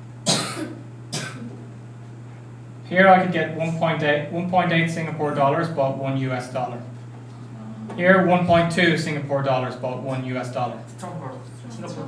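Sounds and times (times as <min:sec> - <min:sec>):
man coughing: 0:00.2 - 0:01.4.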